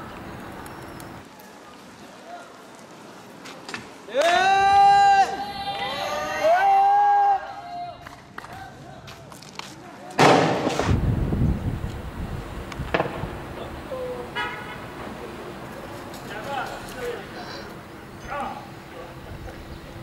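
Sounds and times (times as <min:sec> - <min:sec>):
long high shout: 0:04.1 - 0:08.1
sharp crack: 0:10.1 - 0:11.1, 0:12.7 - 0:13.6
loud bang: 0:10.2 - 0:11.4.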